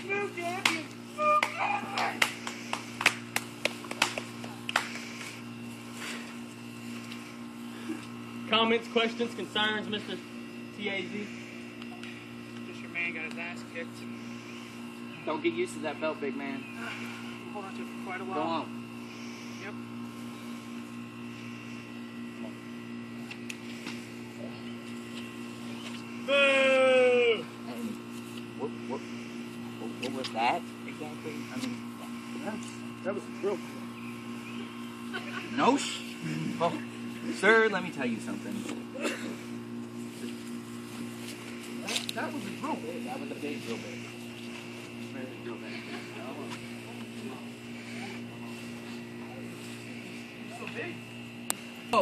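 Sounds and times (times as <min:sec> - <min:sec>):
steady low hum: 0:00.0 - 0:52.0
scattered handclaps: 0:00.6 - 0:05.0.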